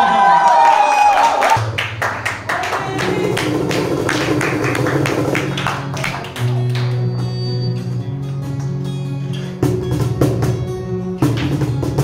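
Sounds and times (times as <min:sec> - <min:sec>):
sharp percussive strikes: 0:01.6 - 0:07.1
acoustic guitar low notes: 0:01.6 - 0:12.0.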